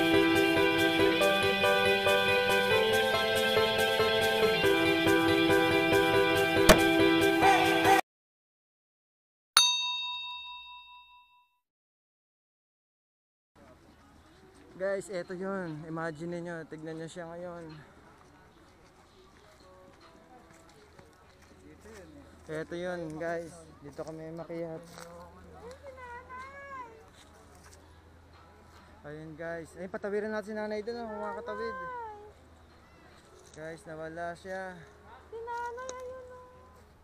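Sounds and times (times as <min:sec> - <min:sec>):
notification bell ding: 0:09.6 - 0:11.6.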